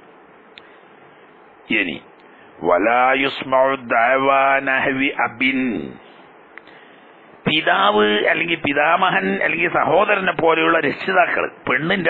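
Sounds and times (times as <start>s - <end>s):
man talking: 1.7s - 6.0s, 7.4s - 12.0s.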